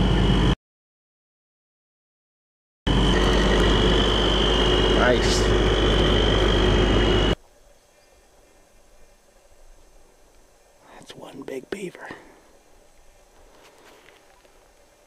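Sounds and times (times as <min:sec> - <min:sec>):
engine running with high whine: 0:00.0 - 0:00.6, 0:02.9 - 0:07.4.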